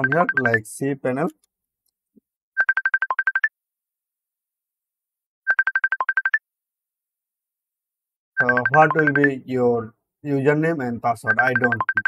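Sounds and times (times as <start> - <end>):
electronic beep ringtone: 0.0 - 0.6, 2.6 - 3.5, 5.5 - 6.4, 8.4 - 9.4, 11.3 - 12.0.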